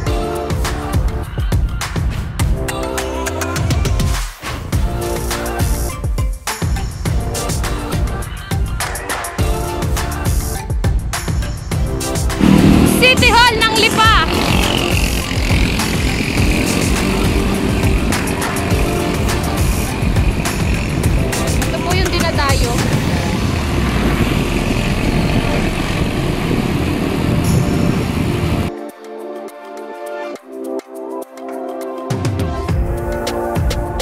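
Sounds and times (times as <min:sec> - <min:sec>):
motorcycle traffic: 0:12.3 - 0:28.7
wind and road noise: 0:12.4 - 0:28.7.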